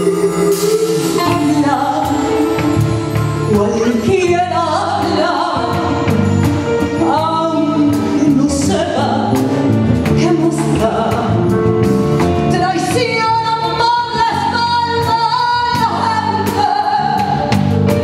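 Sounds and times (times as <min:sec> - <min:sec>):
woman singing: 0:00.0 - 0:11.6, 0:12.4 - 0:17.8
live band with bass drums and horns: 0:00.0 - 0:18.0.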